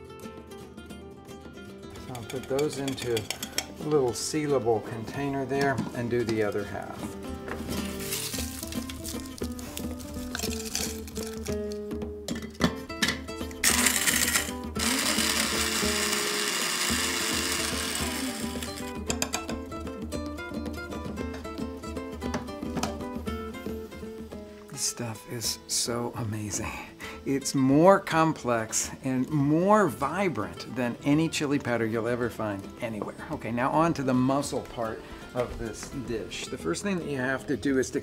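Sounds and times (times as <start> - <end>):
background music: 0.0 - 38.0
electric spice grinder running: 13.6 - 19.0.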